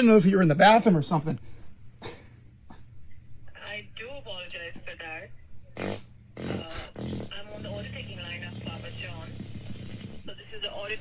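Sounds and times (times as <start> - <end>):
fart sounds: 5.7 - 10.3.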